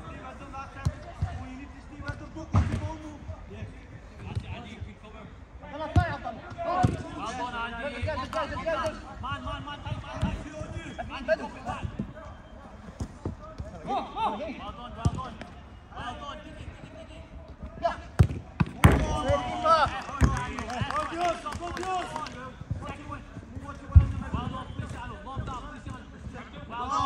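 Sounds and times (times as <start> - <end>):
players shouting: 17.8 - 23.2
ball being kicked: 18.2 - 19.6.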